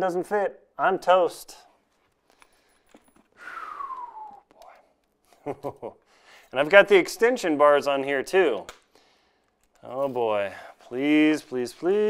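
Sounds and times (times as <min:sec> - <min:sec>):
breathy falling whistle: 0:03.4 - 0:04.8.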